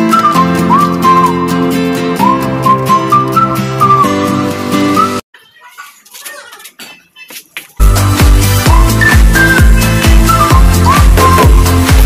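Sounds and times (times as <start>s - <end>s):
electronic dance music: 7.3s - 12.0s.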